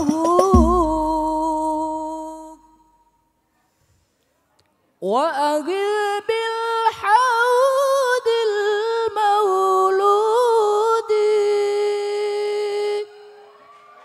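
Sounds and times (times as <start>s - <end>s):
young man singing unaccompanied: 0.0s - 2.9s, 5.0s - 13.4s.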